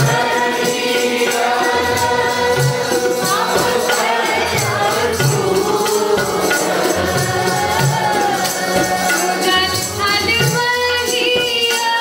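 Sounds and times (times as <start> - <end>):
group singing a hymn: 0.0 - 10.0
harmonium chords: 0.0 - 12.0
tabla beat: 0.0 - 12.0.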